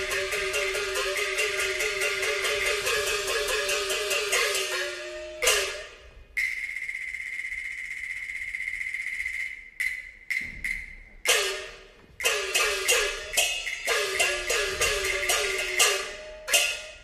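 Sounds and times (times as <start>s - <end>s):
opera percussion ensemble: 0.0s - 17.0s.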